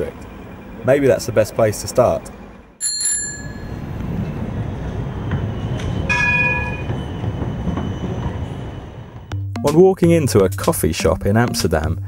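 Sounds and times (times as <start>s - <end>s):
high ringing tone: 0.0s - 4.0s, 5.5s - 9.3s
rail vehicle rumbling past: 0.0s - 9.3s.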